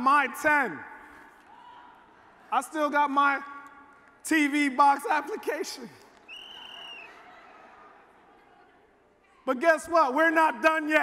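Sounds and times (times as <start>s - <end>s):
high whistle: 6.3s - 7.2s.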